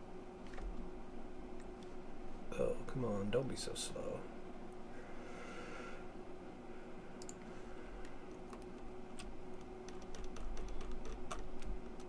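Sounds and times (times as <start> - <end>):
keyboard and mouse clicking: 7.2 - 7.4, 8.3 - 12.0.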